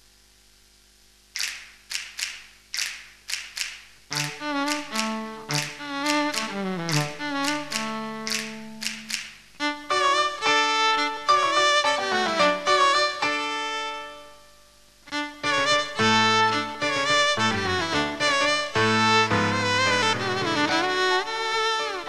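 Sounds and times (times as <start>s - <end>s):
electric violin melody: 4.1s - 14.5s, 15.1s - 22.0s
piano accompaniment: 4.1s - 22.0s.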